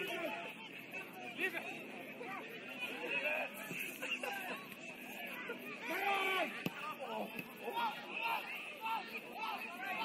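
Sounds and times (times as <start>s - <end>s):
players and spectators calling: 0.0s - 10.0s.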